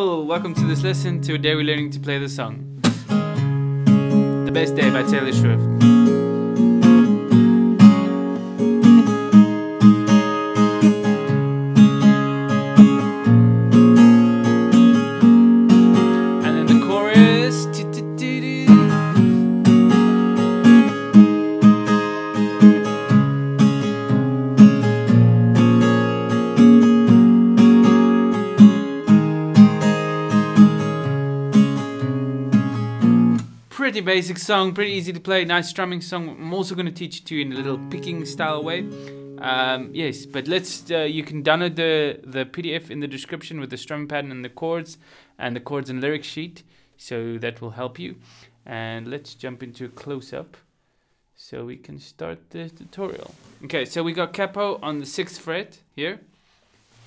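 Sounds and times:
acoustic guitar strumming: 0:00.0 - 0:35.0, 0:36.8 - 0:42.3.

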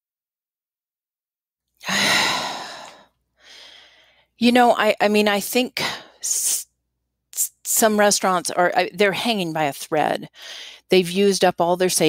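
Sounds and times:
person sighing: 0:01.8 - 0:04.0.

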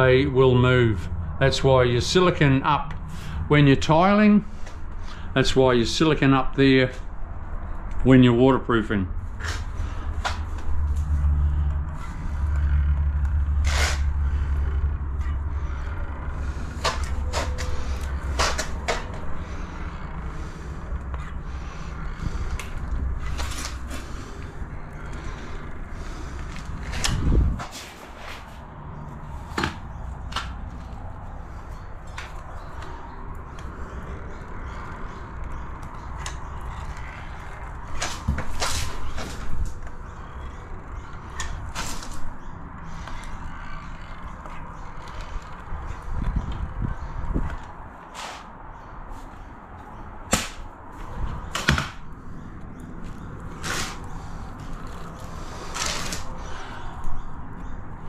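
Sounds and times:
caulking gun clicks and creaks: 0:09.4 - 0:27.7, 0:28.5 - 0:47.9, 0:51.0 - 0:57.8.

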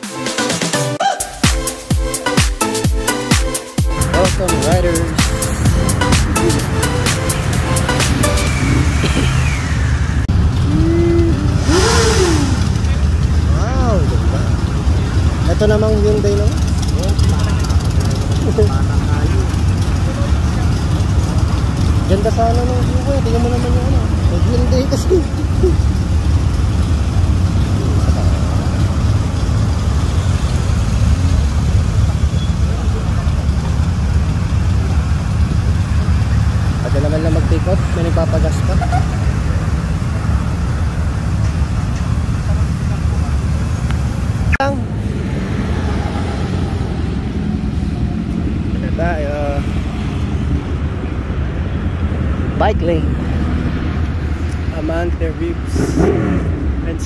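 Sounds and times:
road traffic: 0:00.0 - 0:57.0
motorcycle and vehicle engines: 0:02.2 - 0:57.0
voices: 0:03.9 - 0:29.4, 0:32.1 - 0:49.8.

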